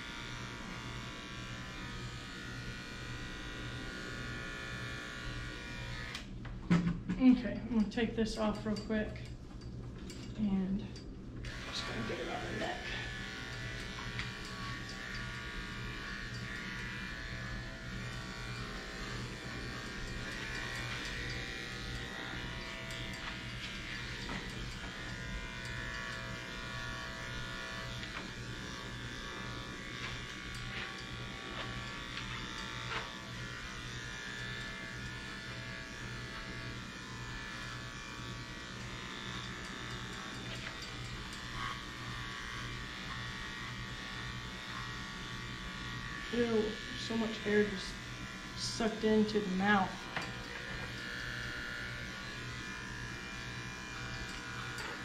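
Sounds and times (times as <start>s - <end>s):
electric clippers buzzing: 0.0s - 7.8s, 11.0s - 55.0s.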